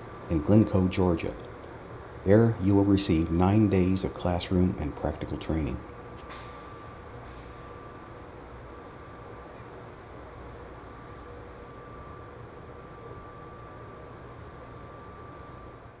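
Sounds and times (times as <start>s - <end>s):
faint high whine: 0.0s - 16.0s.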